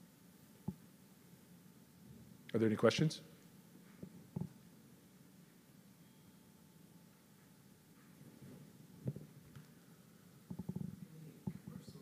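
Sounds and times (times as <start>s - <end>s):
faint muffled voice: 10.8s - 12.0s.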